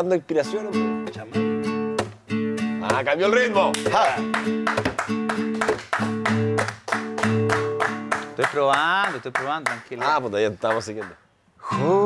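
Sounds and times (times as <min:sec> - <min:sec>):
guitar strumming: 0:00.4 - 0:08.4.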